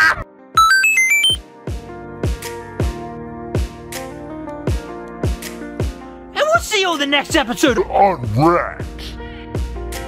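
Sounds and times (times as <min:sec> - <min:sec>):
electronic power-up jingle: 0:00.6 - 0:01.4
background music with steady beat: 0:00.6 - 0:10.0.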